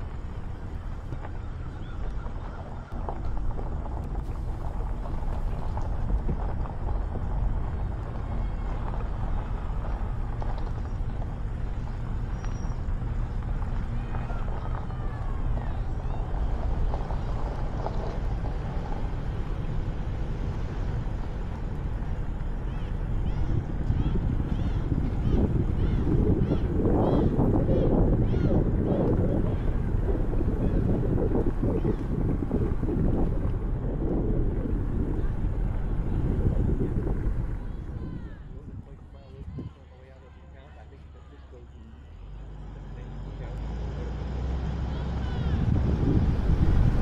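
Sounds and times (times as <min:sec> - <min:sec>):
car engine running: 0:00.0 - 0:38.8
wind gusting over microphone: 0:00.0 - 0:39.8, 0:44.2 - 0:47.0
low vehicle rumble: 0:00.0 - 0:47.0
road noise: 0:00.0 - 0:47.0.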